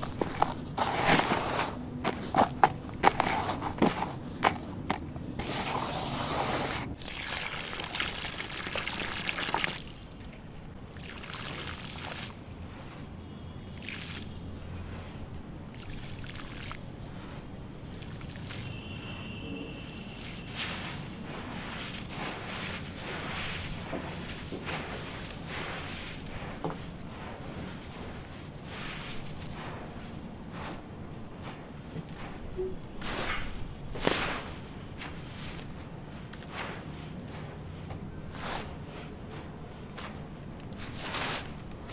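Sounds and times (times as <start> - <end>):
sand-cement mix crunching: 0.0 - 41.9
water pouring onto sand: 7.0 - 10.2, 10.8 - 12.4
crackling trickle: 7.0 - 12.4.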